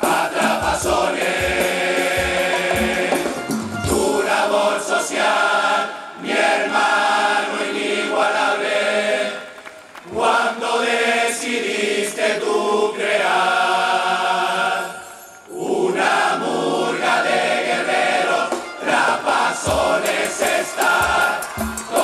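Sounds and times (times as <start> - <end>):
chorus singing loudly in unison: 0.0 - 22.0.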